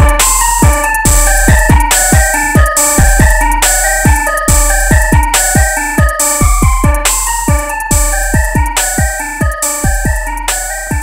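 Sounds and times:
deep sliding bass hits: 0.0 - 5.8, 6.4 - 9.2
hi-hat and snare hits: 0.0 - 11.0
staccato flute melody: 0.0 - 11.0.

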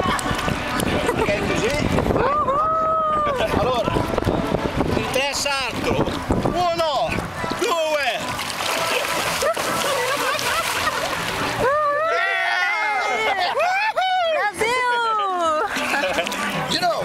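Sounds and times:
churning sloshing water: 3.3 - 12.0
body splashing into water: 8.2 - 11.6.

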